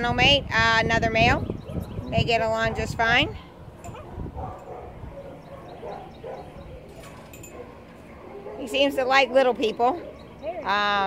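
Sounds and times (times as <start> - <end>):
faint dog barking: 2.6 - 10.4.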